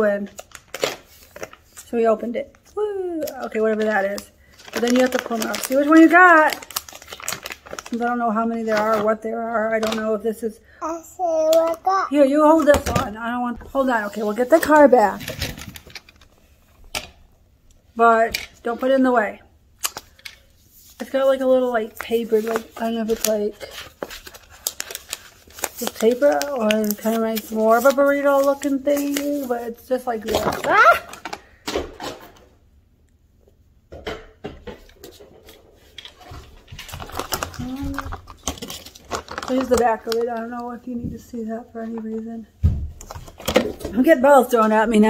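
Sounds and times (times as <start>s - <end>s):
plastic packaging rustling: 0.2s - 10.2s, 12.4s - 17.0s, 19.8s - 31.6s, 34.8s - 42.3s, 43.0s - 45.0s
person speaking: 10.8s - 15.2s.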